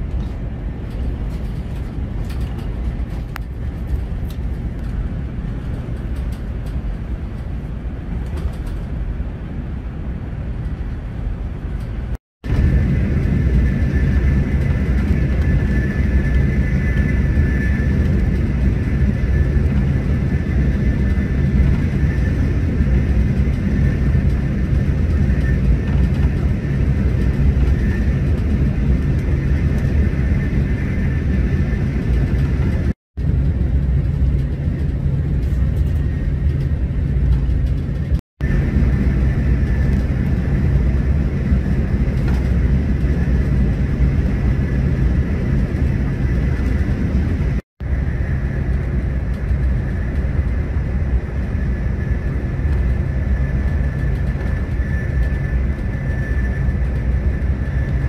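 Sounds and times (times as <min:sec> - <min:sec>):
train running rumble: 0:00.0 - 0:58.0
faint high whine: 0:38.4 - 0:58.0.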